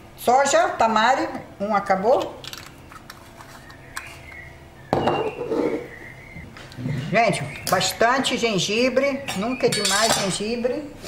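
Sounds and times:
glass bottle knocking on worktop: 0:04.9 - 0:05.3.

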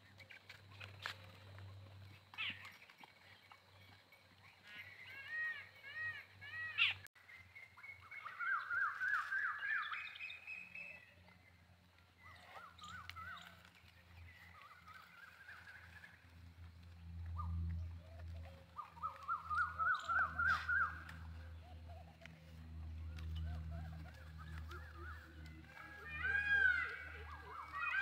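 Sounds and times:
birds calling: 0:00.0 - 0:28.0.

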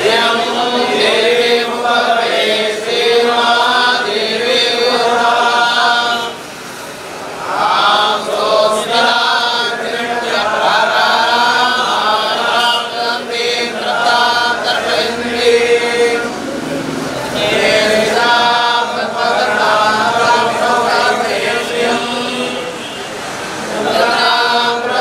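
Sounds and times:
priests chanting together: 0:00.0 - 0:25.0.

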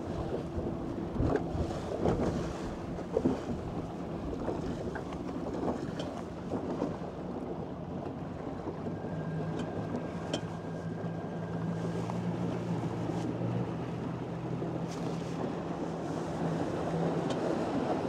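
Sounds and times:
wind buffeting microphone: 0:00.0 - 0:07.0
electric outboard motor hum and whine: 0:00.0 - 0:18.0
water rushing past boat hull: 0:00.0 - 0:18.0.

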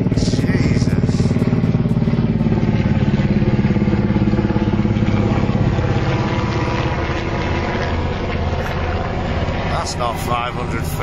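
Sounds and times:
helicopter engine drone: 0:00.0 - 0:11.0
helicopter rotor beating: 0:00.0 - 0:11.0.

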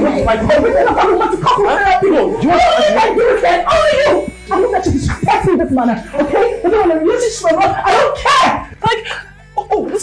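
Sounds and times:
voices talking in yelping bursts: 0:00.0 - 0:10.0.

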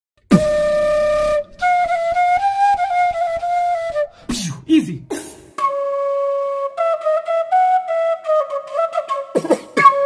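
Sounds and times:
beatboxed pulses: 0:00.2 - 0:00.6, 0:09.4 - 0:10.0
flute melody: 0:00.3 - 0:04.5, 0:05.5 - 0:10.0.

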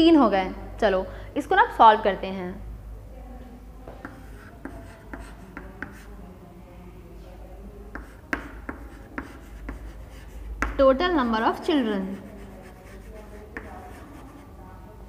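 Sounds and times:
chalk tapping and scratching: 0:04.0 - 0:06.2, 0:07.9 - 0:10.9, 0:12.0 - 0:14.5.

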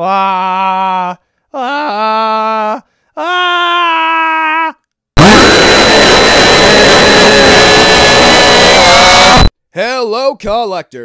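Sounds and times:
monster roar: 0:05.2 - 0:09.5.

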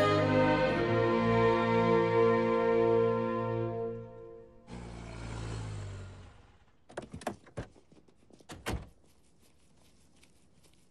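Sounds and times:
car engine rumbling: 0:04.1 - 0:07.6.

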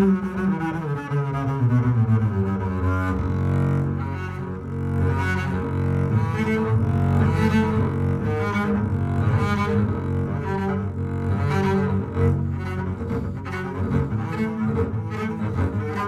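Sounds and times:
bowed double bass: 0:00.0 - 0:16.0.

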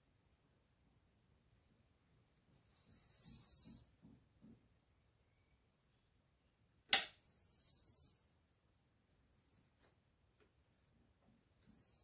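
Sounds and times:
spot welder snap: 0:06.9 - 0:07.2.

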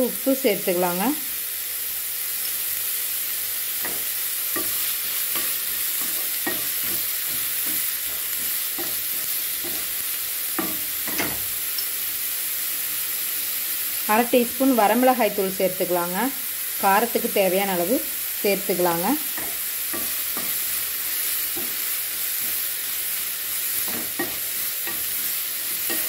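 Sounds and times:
vegetables sizzling in oil: 0:00.0 - 0:26.0
spatula scraping a pan: 0:03.8 - 0:10.0, 0:23.6 - 0:26.0.

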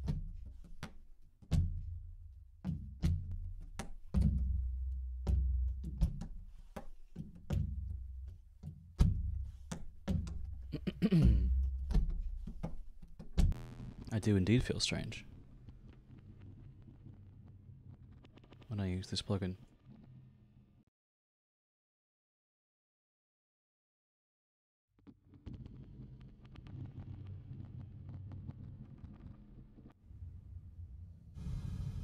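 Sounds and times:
buzzing pitched tone: 0:13.6 - 0:14.2.

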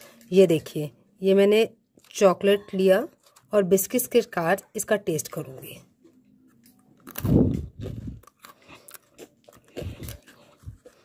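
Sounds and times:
crisp biscuit crunches: 0:06.7 - 0:11.0.

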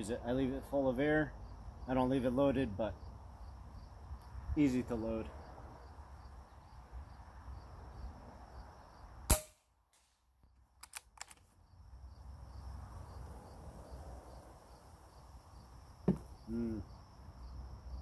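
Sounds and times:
air rifle shot crack: 0:09.3 - 0:10.2
metallic clicks of rifle action: 0:10.7 - 0:11.5.

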